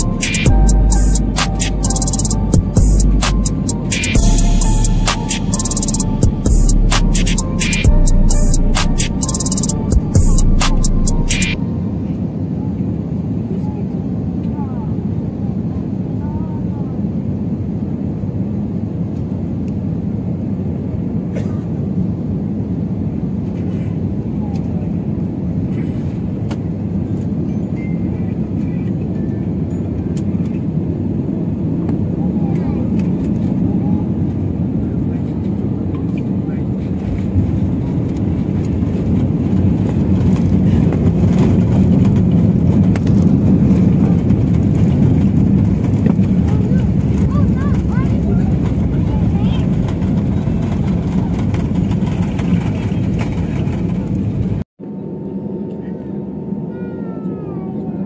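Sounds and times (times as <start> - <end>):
airliner engine and airflow rumble: 0.0 - 58.0.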